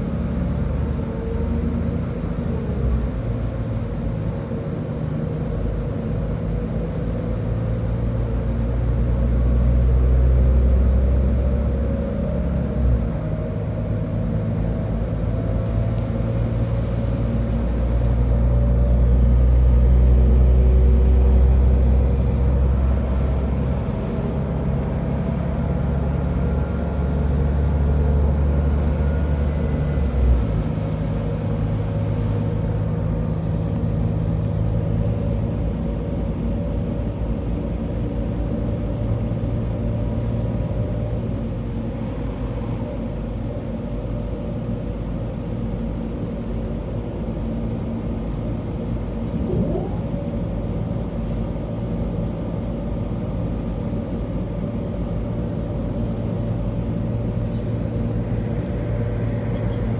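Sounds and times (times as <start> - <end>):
train rumbling in motion: 0.0 - 59.9.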